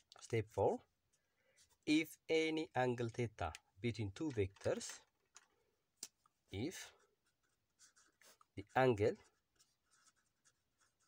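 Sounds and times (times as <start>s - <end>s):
pencil scratching on paper: 7.2s - 11.0s.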